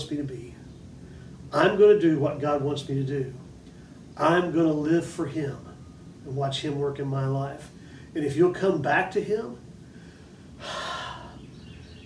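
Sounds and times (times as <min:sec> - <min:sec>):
man breathing in through mouth: 0:09.8 - 0:11.4.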